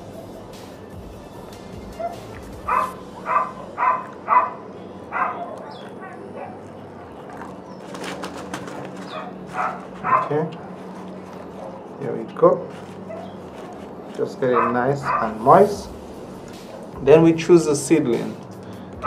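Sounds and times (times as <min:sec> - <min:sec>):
dog barking and yipping: 0:02.0 - 0:11.9, 0:13.0 - 0:13.8, 0:14.4 - 0:15.8.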